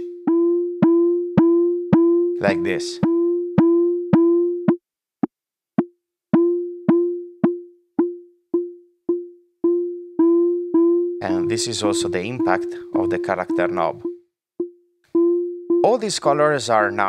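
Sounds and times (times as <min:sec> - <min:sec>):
pitched synth pings: 0:00.0 - 0:04.8, 0:06.4 - 0:16.5.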